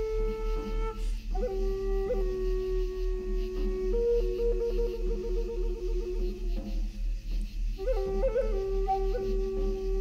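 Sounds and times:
flute long held notes: 0:00.0 - 0:10.0.

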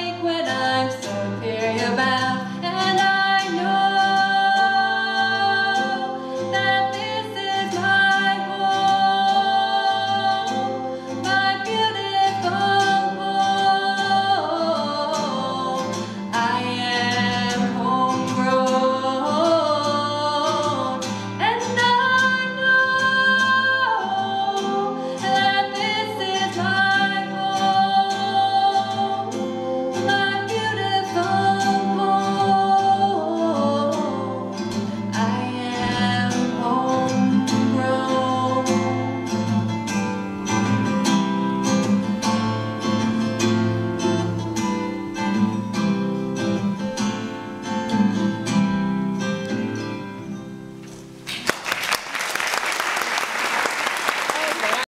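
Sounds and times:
acoustic guitar strumming: 0:00.0 - 0:51.4
audience applause: 0:51.3 - 0:54.9.

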